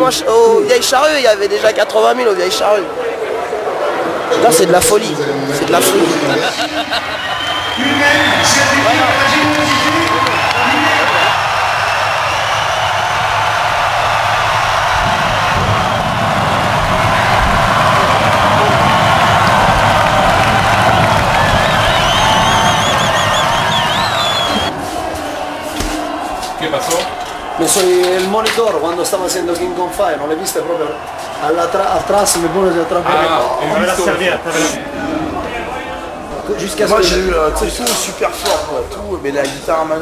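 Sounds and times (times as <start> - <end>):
crowd cheering: 0.0 - 40.0
shrill whistles: 7.1 - 13.3, 20.8 - 24.7.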